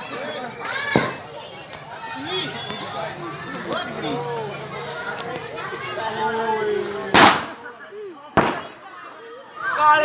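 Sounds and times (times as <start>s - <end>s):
people calling and talking: 0.0s - 10.0s.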